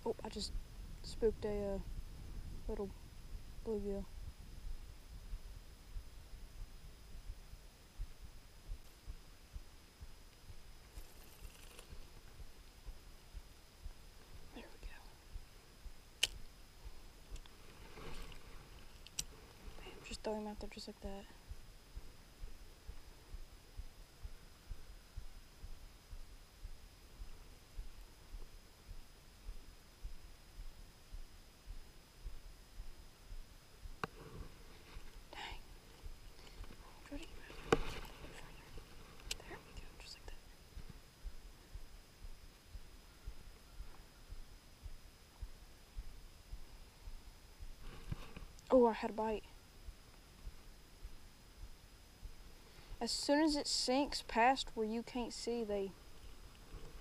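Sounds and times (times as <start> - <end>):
faint whispered muttering: 14.4 - 15.4, 36.4 - 40.6.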